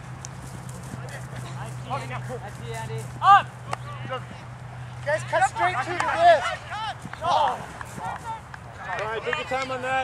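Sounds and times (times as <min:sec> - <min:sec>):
distant players shouting: 0:00.9 - 0:10.0.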